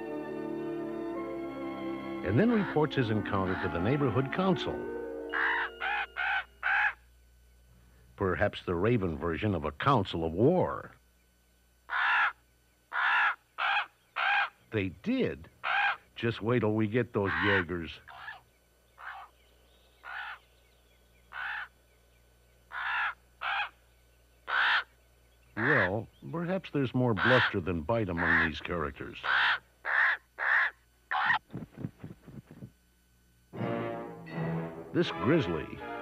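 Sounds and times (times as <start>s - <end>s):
faint background music note: 0.0s - 6.6s, 33.5s - 36.0s
raven cawing: 2.4s - 3.9s, 5.3s - 7.0s, 11.9s - 14.6s, 15.6s - 16.0s, 17.2s - 18.4s, 19.0s - 19.3s, 20.0s - 20.4s, 21.3s - 21.8s, 22.7s - 23.8s, 24.4s - 24.9s, 25.6s - 26.0s, 27.2s - 27.6s, 28.2s - 28.6s, 29.2s - 31.4s.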